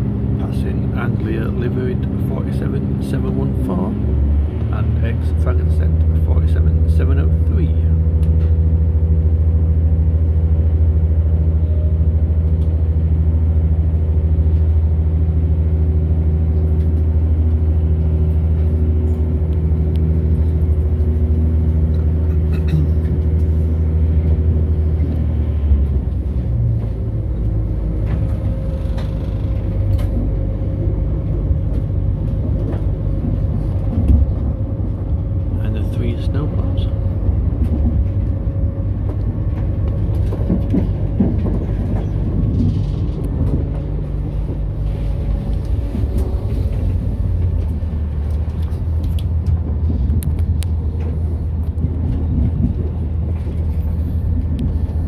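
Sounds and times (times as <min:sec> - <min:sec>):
train engine droning: 0:00.0 - 0:55.0
train wheels rumbling on track: 0:00.0 - 0:55.0.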